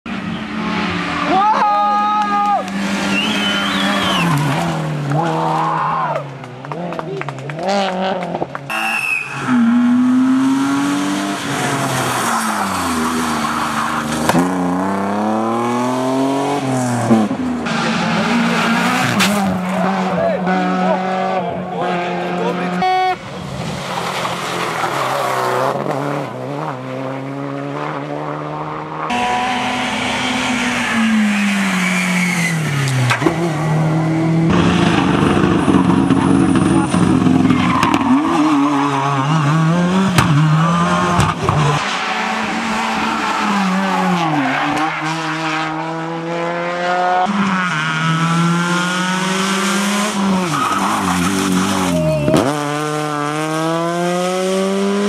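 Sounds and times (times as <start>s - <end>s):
rally car engines revving: 0.1s - 55.0s.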